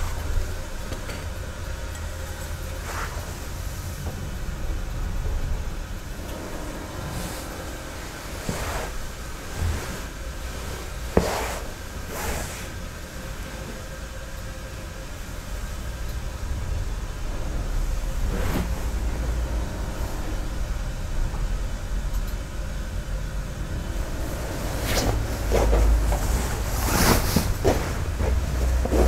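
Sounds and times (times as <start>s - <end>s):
low rumble: 0.0s - 10.6s, 15.6s - 29.0s.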